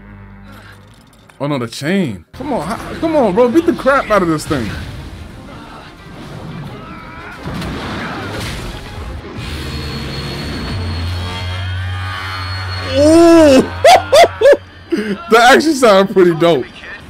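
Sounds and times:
fight scene music: 2.4s - 12.8s
short voice-like cries: 12.7s - 14.6s.

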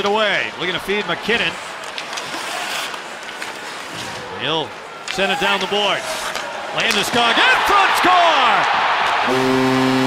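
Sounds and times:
arena crowd noise: 0.0s - 10.0s
skates scraping on ice: 1.5s - 4.3s.

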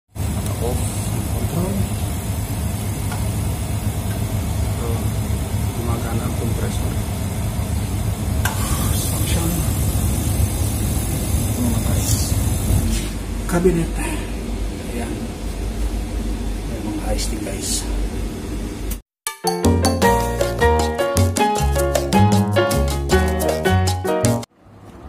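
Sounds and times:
refrigeration compressor humming: 0.1s - 19.0s.

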